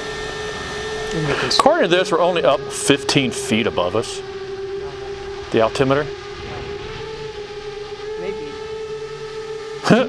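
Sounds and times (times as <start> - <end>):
drone motors humming: 0.0 - 10.0.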